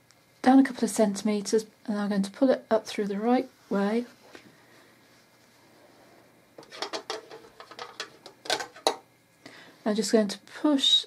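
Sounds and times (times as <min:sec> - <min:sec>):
fabric rustling and scraping: 0:03.3 - 0:07.9.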